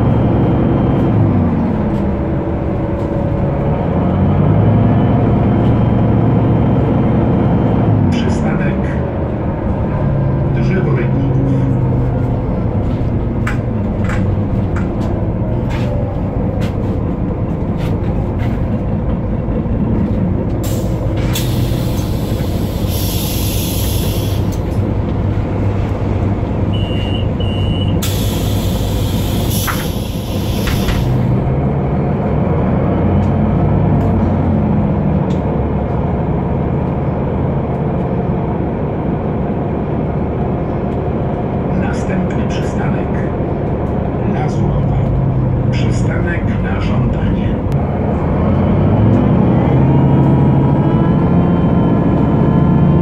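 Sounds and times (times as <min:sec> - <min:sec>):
bus diesel engine: 0:00.0 - 0:53.0
compressed air hissing: 0:20.7 - 0:24.6, 0:28.0 - 0:31.3
short beeps: 0:26.7 - 0:28.0.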